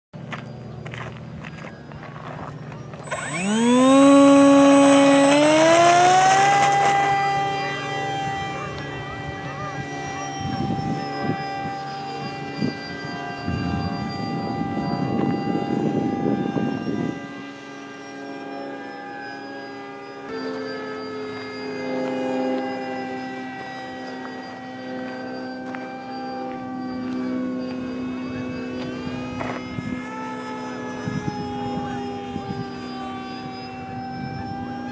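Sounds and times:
steady low hum: 0.2s - 34.9s
footsteps on gravel: 0.3s - 3.1s.

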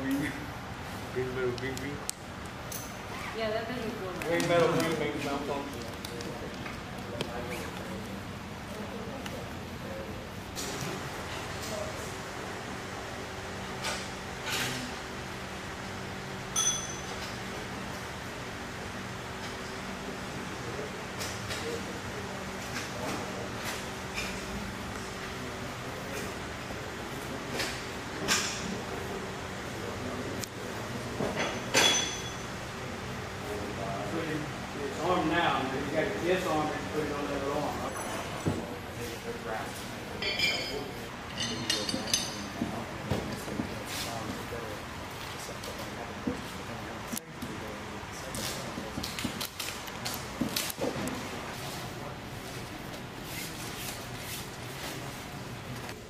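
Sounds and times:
floor fan whirring: 0.0s - 56.0s
steady background noise: 0.0s - 56.0s.

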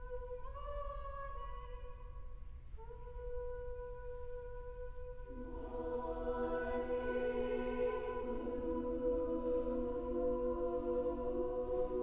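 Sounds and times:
women's choir singing softly: 2.8s - 12.0s.

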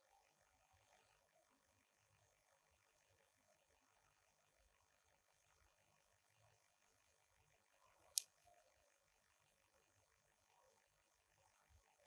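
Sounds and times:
matchbox click: 8.0s - 8.4s.

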